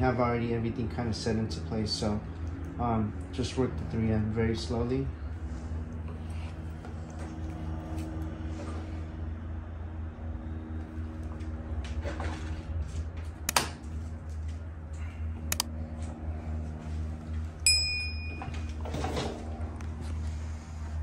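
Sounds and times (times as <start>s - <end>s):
low steady hum: 0.0s - 21.0s
sharp clicks: 15.5s - 15.7s
bright bell ding: 17.6s - 18.8s.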